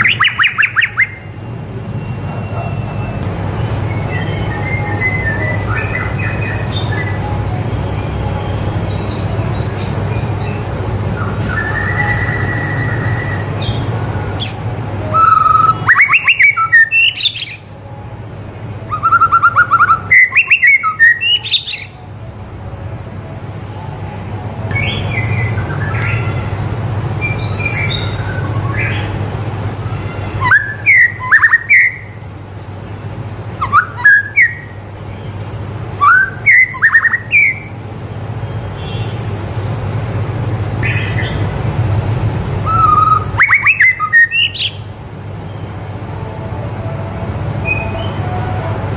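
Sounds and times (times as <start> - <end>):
bird song with rising whistles: 0.0 - 1.4, 2.0 - 7.3, 7.9 - 17.7, 18.9 - 22.1, 24.7 - 26.5, 27.2 - 29.1, 29.7 - 32.9, 33.6 - 37.7, 42.6 - 44.9, 47.6 - 48.2.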